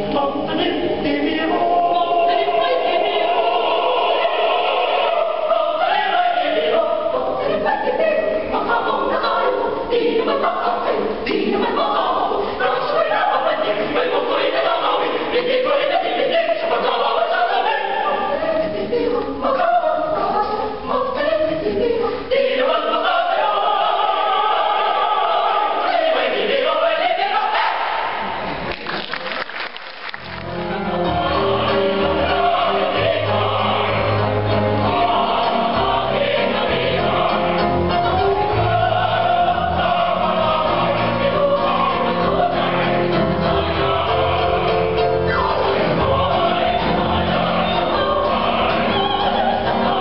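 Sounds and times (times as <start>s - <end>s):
mixed choir singing a cappella: 0.0s - 28.6s, 30.6s - 50.0s
audience applauding: 28.5s - 30.7s.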